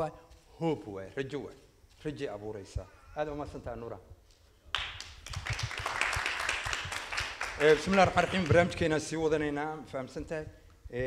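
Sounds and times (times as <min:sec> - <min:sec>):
audience clapping: 0:04.7 - 0:09.0.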